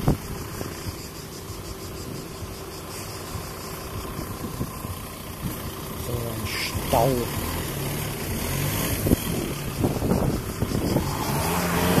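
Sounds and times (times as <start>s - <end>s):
car engines in slow traffic: 0.0s - 12.0s.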